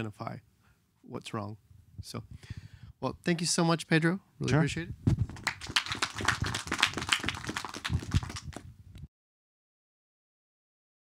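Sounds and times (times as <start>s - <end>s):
audience applauding: 5.3s - 8.6s.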